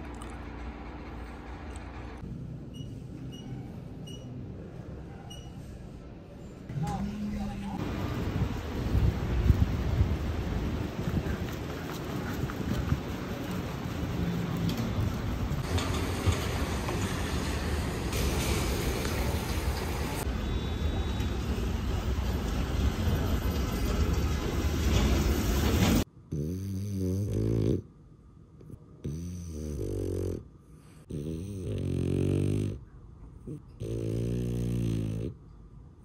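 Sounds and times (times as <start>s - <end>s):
wet city street noise: 7.8s - 26.0s
dog snoring: 26.3s - 27.9s, 28.6s - 35.4s.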